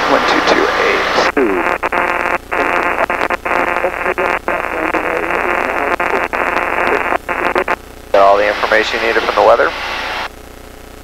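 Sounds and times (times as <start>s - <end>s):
tinny radio voice: 0.0s - 9.8s
voice on intercom: 2.6s - 9.8s.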